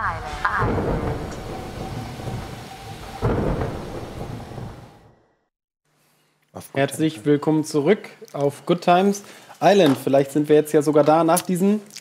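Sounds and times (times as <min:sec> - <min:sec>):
rolling thunder: 0:00.1 - 0:05.3
rain: 0:00.8 - 0:05.0.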